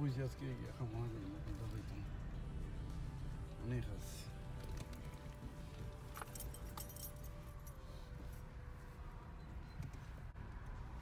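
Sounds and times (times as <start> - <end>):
light metallic jingles and clicks: 4.4 - 8.0.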